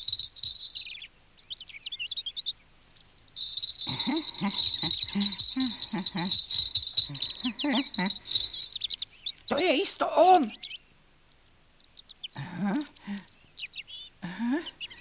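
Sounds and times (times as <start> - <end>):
crickets chirring: 0.0 - 1.0, 3.4 - 9.7
birds chirping: 0.0 - 15.0.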